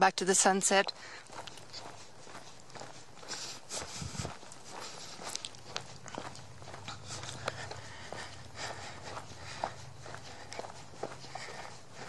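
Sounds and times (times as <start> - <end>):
footsteps on gravel: 0.4 - 12.0.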